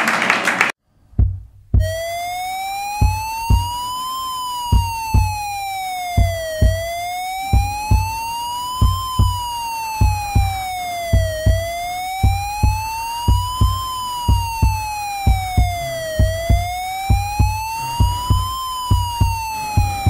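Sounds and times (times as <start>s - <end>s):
heavy thudding drum beat: 1.0s - 2.2s, 3.0s - 3.9s, 4.7s - 20.0s
wailing siren tone: 1.8s - 20.0s.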